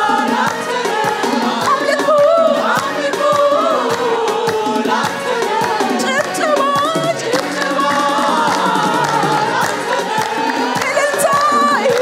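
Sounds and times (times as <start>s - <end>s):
mixed choir singing: 0.0s - 12.0s
steady beat: 0.0s - 12.0s.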